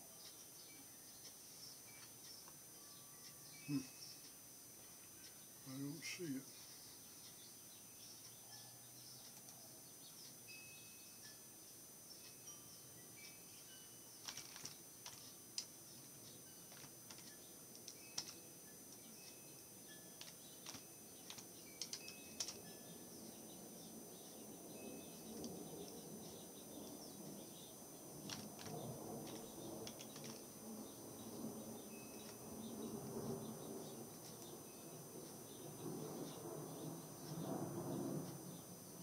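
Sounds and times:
faint keyboard typing: 0:01.2 - 0:02.6, 0:09.1 - 0:10.4, 0:14.2 - 0:19.5, 0:20.1 - 0:22.7, 0:28.2 - 0:31.4, 0:32.2 - 0:34.6.

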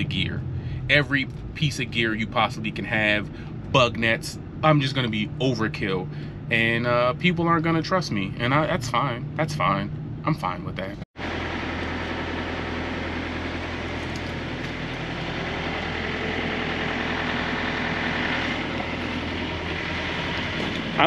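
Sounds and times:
vehicle engine idling: 0:00.0 - 0:21.0.

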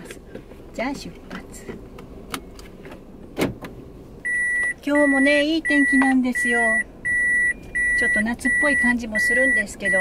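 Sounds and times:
car reverse warning beeps: 0:04.2 - 0:10.0.

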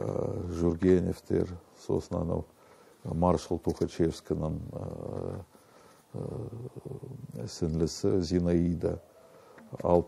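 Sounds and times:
man's low drawn-out voice: 0:06.2 - 0:09.0.

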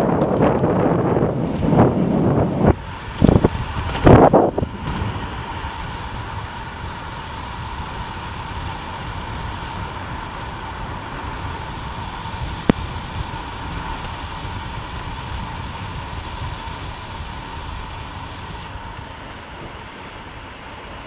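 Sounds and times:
wind on microphone: 0:00.0 - 0:20.4
bicycle tyres rolling on asphalt: 0:00.0 - 0:21.0.

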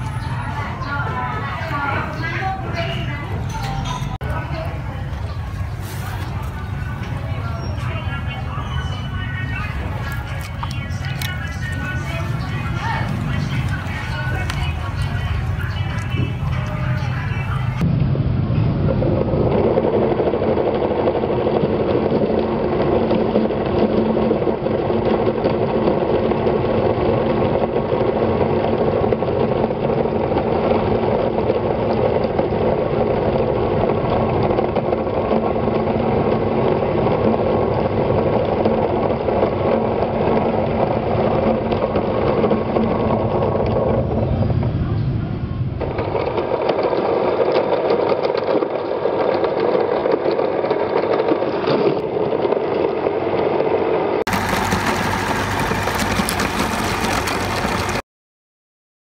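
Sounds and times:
meat grinder grinding: 0:54.3 - 0:58.0.

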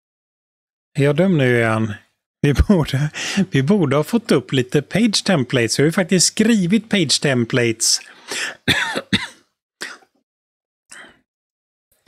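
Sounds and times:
man's breathy vocal bursts: 0:08.1 - 0:08.7.

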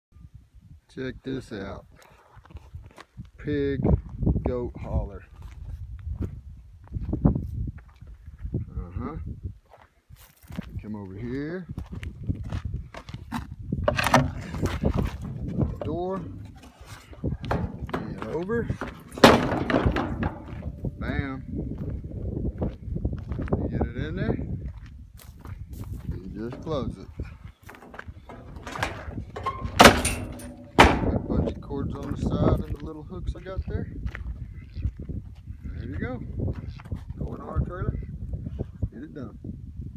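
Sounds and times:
door banging shut: 0:13.9 - 0:14.4, 0:17.5 - 0:20.8, 0:27.8 - 0:31.5.

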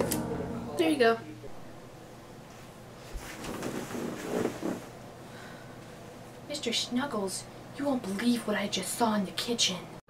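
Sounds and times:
bedding rustling: 0:02.6 - 0:05.0.

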